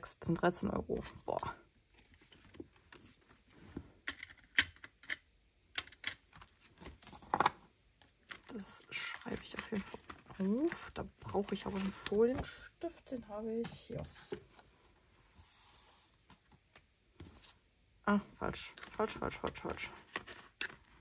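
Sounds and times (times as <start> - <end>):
banknotes rustling: 8.6 - 12.7.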